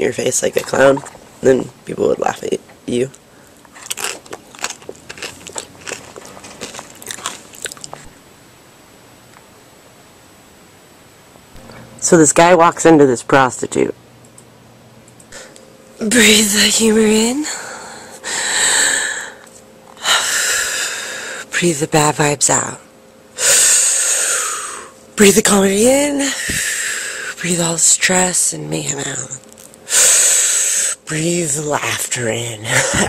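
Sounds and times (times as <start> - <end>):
wet mouth clicks and crunches: 3.6 - 8.1
person breathing in deeply: 17.5 - 21.5.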